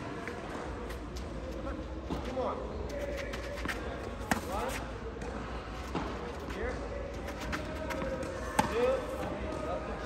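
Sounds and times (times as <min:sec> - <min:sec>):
faint voices talking: 0:00.0 - 0:10.0
tennis balls struck by rackets: 0:03.6 - 0:06.3, 0:07.2 - 0:09.7.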